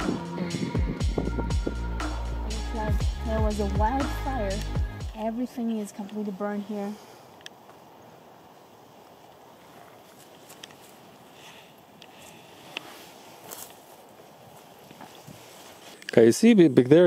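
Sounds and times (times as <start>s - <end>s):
steady low hiss: 0.0s - 17.0s
footsteps on dry grass: 8.6s - 16.0s
twigs crackling and snapping: 9.1s - 16.2s.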